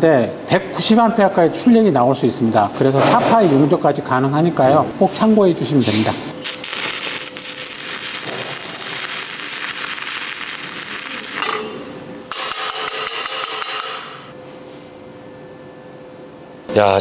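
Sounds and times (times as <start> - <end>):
welding arc crackling hiss: 5.9 - 14.3.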